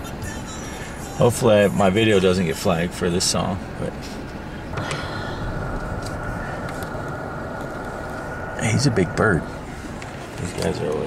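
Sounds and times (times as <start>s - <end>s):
steady high-pitched tone: 0.0s - 2.6s, 4.7s - 11.0s
vehicle engine idling: 0.0s - 11.0s.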